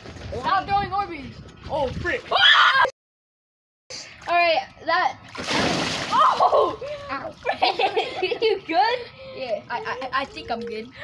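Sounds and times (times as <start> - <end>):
splash and slosh of water: 5.3 - 6.7.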